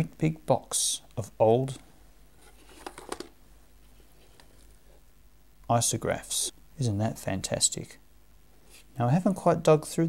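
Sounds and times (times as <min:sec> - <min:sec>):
pens and plastic cases rattling: 0:02.6 - 0:03.3.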